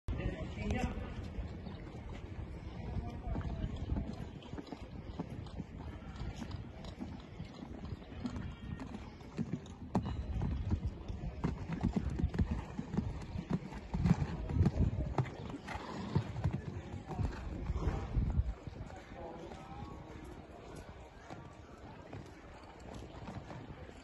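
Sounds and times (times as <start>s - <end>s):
horse hoofbeats on sand: 0.5s - 24.0s.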